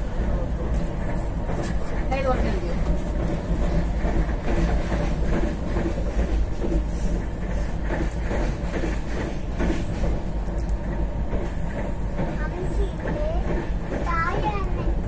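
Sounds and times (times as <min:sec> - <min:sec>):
train clicks and clatter: 0:00.0 - 0:15.0
train wheels rumbling on track: 0:00.0 - 0:15.0.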